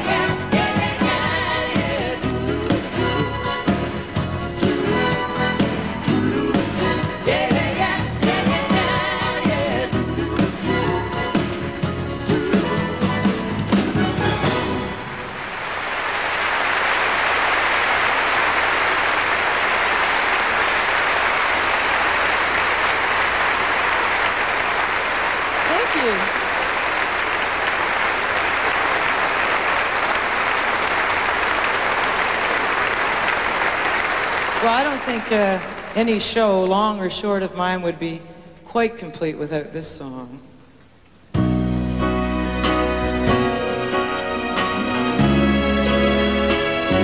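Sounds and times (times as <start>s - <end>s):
pop song with orchestra: 0.0s - 15.4s, 41.4s - 47.0s
audience applause: 14.9s - 36.0s
person speaking: 25.7s - 26.4s.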